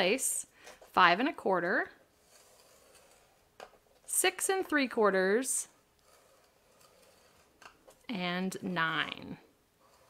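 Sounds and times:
stylus scraping cardstock: 0:02.1 - 0:04.6, 0:06.0 - 0:08.0, 0:09.8 - 0:10.0.

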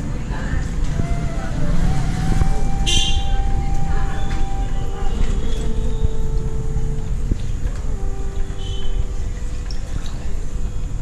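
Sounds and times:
dense background rumble: 0:00.0 - 0:11.0
murmur of voices: 0:00.0 - 0:11.0
long steady tone: 0:00.7 - 0:11.0.

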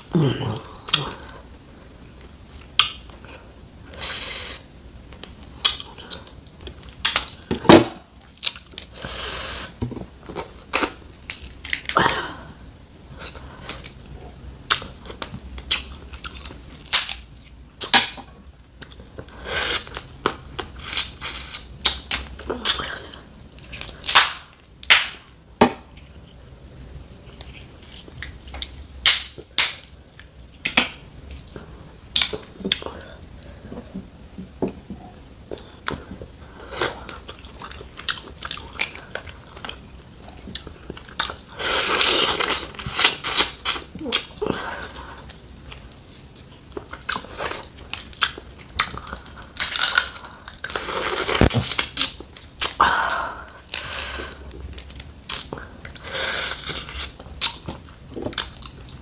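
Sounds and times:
crab shells cracking: 0:07.0 - 0:08.9, 0:10.7 - 0:12.0, 0:15.7 - 0:18.2, 0:46.8 - 0:50.8, 0:53.6 - 0:56.0
chewing and mouth sounds: 0:36.8 - 0:52.8, 0:53.7 - 0:59.0.

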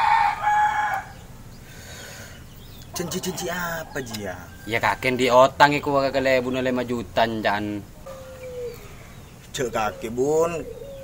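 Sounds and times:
rooster crowing: 0:00.0 - 0:01.3, 0:03.0 - 0:05.5.

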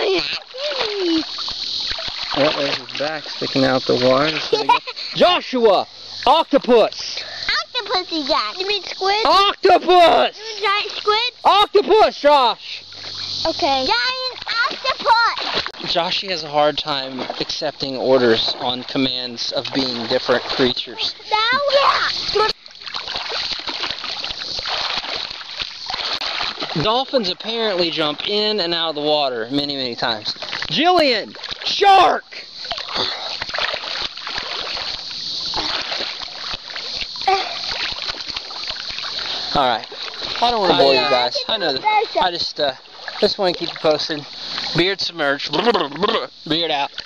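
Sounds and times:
children calling out: 0:00.0 - 0:01.3, 0:13.8 - 0:15.5, 0:21.1 - 0:22.6, 0:40.4 - 0:42.2
water splashing: 0:00.0 - 0:47.0
person's voice: 0:40.5 - 0:42.0.

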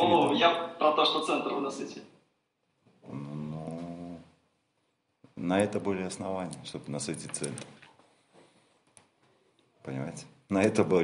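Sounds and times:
man humming: 0:03.0 - 0:04.4.

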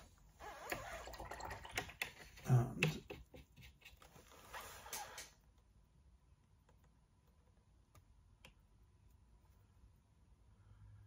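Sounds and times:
faint rustling and scraping: 0:03.3 - 0:05.5.

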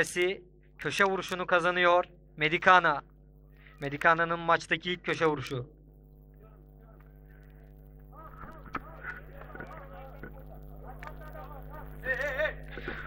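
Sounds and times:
steady hum: 0:00.0 - 0:13.0
distant players calling out: 0:08.0 - 0:13.0.

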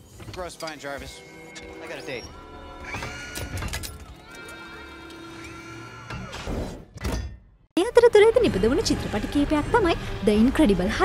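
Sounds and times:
soft music: 0:00.4 - 0:02.8.

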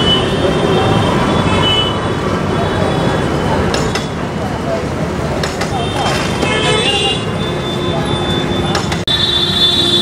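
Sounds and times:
busy street traffic: 0:00.0 - 0:10.0
vehicle horn: 0:09.1 - 0:10.0.

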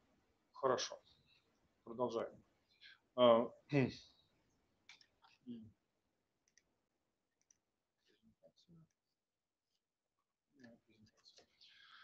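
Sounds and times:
faint clicks: 0:06.4 - 0:06.7.

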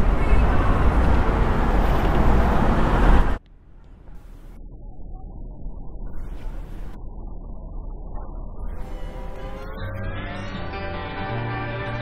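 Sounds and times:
music with bass line: 0:08.7 - 0:12.0.

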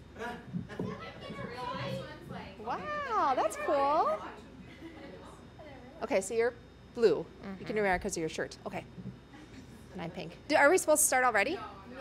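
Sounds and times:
background chatter of voices: 0:00.0 - 0:08.0, 0:08.8 - 0:10.5.

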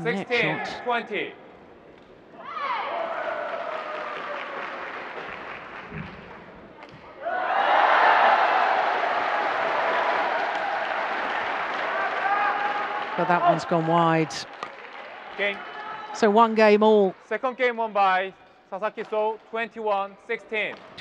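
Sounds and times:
crowd cheering and clapping: 0:02.6 - 0:06.6, 0:07.2 - 0:16.2.

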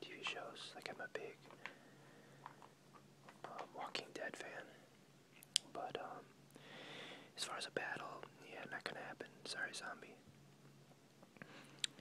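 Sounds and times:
person whispering: 0:00.0 - 0:01.4, 0:03.4 - 0:04.9, 0:05.6 - 0:06.3, 0:07.4 - 0:10.2
magazine pages rustling: 0:02.4 - 0:03.9.

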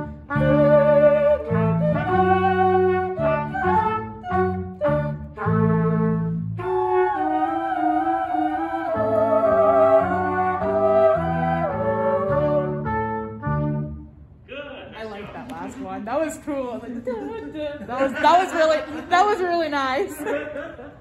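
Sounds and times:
brass and woodwind chords: 0:00.0 - 0:14.2.

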